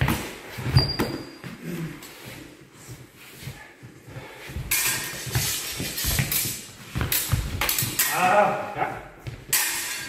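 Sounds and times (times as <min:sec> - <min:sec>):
feet thudding and scuffing: 0:00.0 - 0:07.9
steady rustling: 0:01.9 - 0:08.1.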